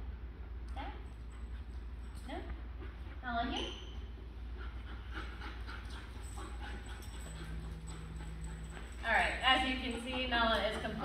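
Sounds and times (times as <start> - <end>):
steady low hum: 0.0 - 11.0
puppy claws clicking on concrete: 7.0 - 11.0.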